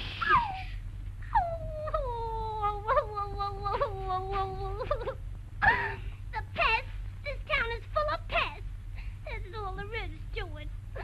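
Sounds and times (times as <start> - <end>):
cartoon woman crying: 1.3 - 6.1.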